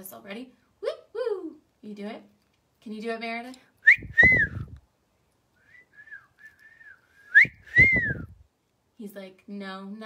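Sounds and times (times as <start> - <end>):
faint wavering whistling: 3.8 - 4.8, 5.6 - 8.4
person whistling two-note call: 3.9 - 4.8, 5.6 - 8.3.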